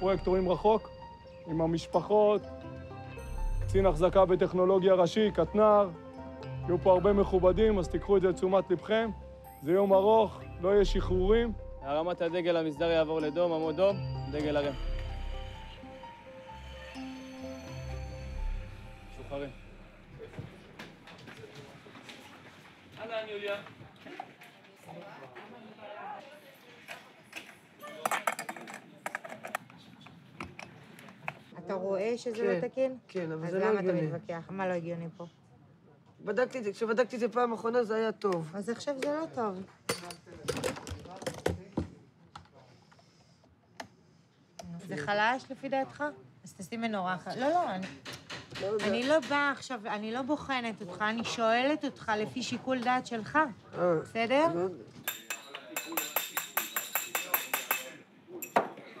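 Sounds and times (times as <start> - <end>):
metal tools clicking and clinking: 55.1 - 58.6
hammer tapping on metal: 55.1 - 58.7.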